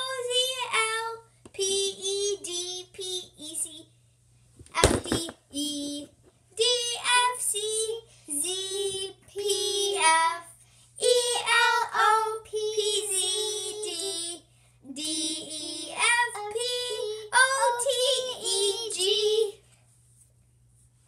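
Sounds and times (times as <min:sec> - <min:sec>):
girl singing: 0:00.0 - 0:03.8, 0:04.9 - 0:19.6.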